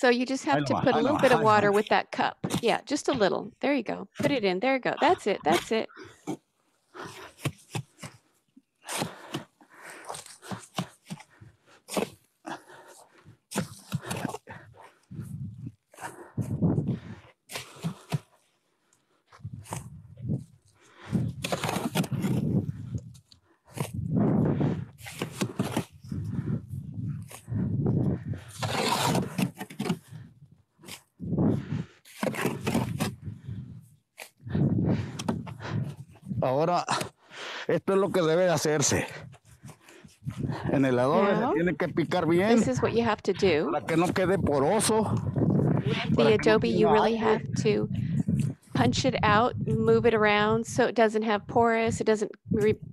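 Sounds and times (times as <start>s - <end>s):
shovel scraping wet mud: 28.5s - 30.0s.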